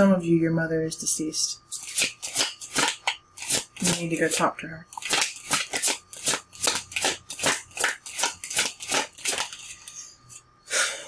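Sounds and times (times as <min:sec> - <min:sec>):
cards being shuffled: 0:01.8 - 0:10.0.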